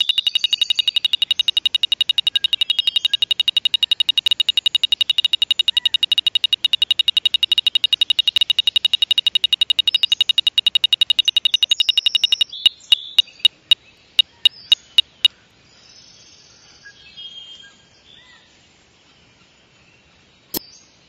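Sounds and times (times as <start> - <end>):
high-pitched buzzer tone: 0.0 - 15.3
rapid electronic clicking: 0.0 - 15.3.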